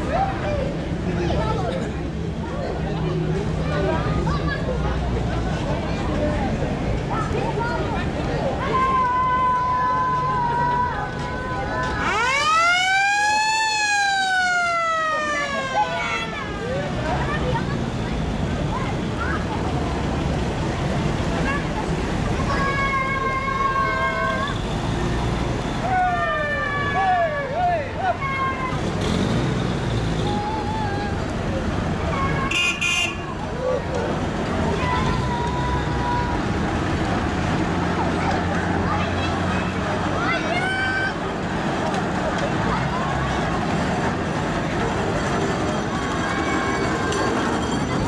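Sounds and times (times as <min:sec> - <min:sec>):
crowd voices: 0:00.0 - 0:48.0
vehicle engine rumble: 0:00.0 - 0:48.0
vehicle horn: 0:32.1 - 0:33.3.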